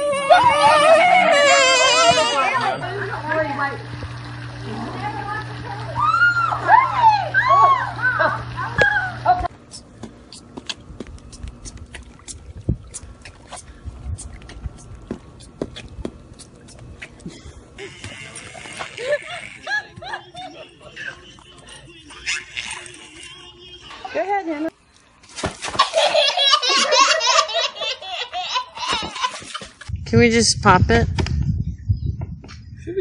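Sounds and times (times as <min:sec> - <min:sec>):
steady low hum: 0:00.0 - 0:25.3, 0:26.3 - 0:33.0
pool water splashing: 0:00.0 - 0:28.3
high-pitched voices: 0:11.3 - 0:24.7.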